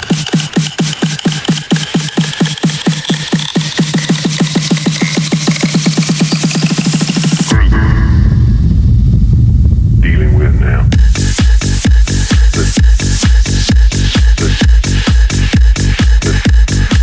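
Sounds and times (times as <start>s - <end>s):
heavy bass: 0.0s - 17.0s
techno drum roll: 0.0s - 17.0s
rising sweep: 4.1s - 13.7s.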